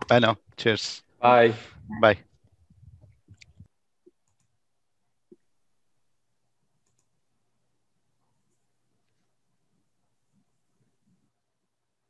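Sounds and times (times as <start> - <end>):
faint clicks: 3.0 - 4.6, 6.8 - 7.2.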